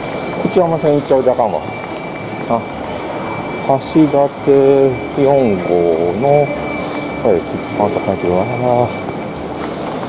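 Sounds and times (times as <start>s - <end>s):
station concourse noise: 0.0s - 10.0s
faint high tone: 0.4s - 9.2s.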